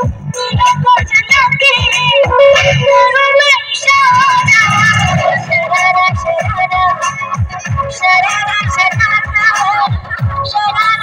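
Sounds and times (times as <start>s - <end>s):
dance song with heavy beat: 0.0s - 11.0s.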